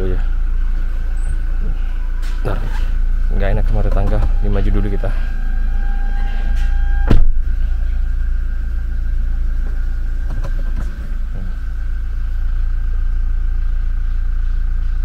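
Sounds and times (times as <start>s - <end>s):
car engine rumbling: 0.0s - 15.0s.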